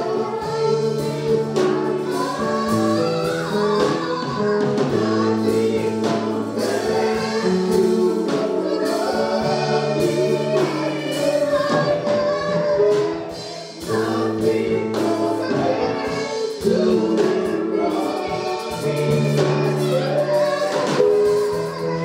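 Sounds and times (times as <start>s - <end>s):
choir singing in harmony: 0.0s - 22.0s
drums steady beat: 0.0s - 22.0s
live band: 0.0s - 22.0s.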